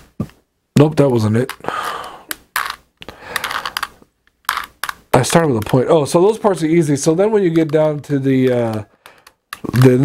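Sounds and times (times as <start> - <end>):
puzzle cube clicking: 1.4 - 10.0.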